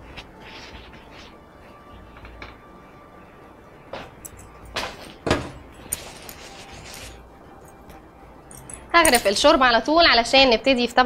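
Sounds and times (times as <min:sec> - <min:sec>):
kitchen items knocking and clattering: 0:04.7 - 0:06.1.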